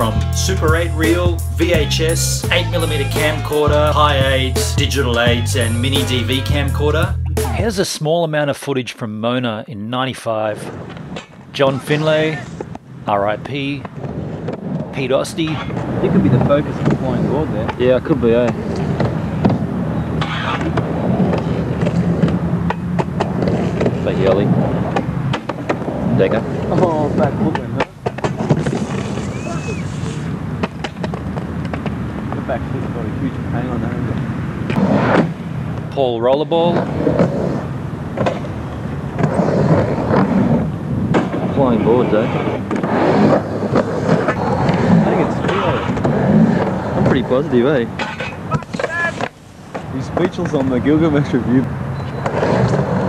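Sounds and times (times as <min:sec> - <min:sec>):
indistinct voices: 0:00.0 - 0:08.0, 0:11.5 - 0:13.9
skateboard wheels rolling on ramp: 0:10.4 - 0:53.0.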